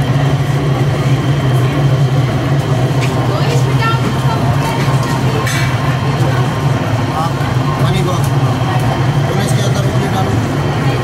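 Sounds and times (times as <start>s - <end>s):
potter's wheel motor hum: 0.0s - 11.0s.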